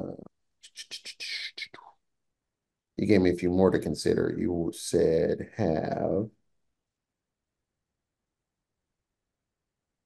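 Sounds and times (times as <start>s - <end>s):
man whispering and mumbling: 0.0s - 2.0s, 4.3s - 6.3s.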